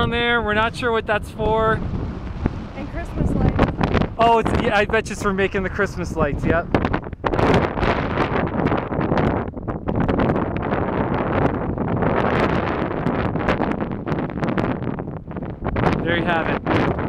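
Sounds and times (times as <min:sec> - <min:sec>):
gusty wind buffeting microphone: 0:00.0 - 0:17.0.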